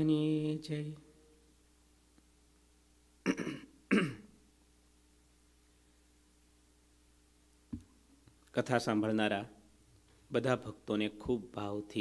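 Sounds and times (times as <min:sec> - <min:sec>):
man clearing his throat: 0:03.2 - 0:04.4.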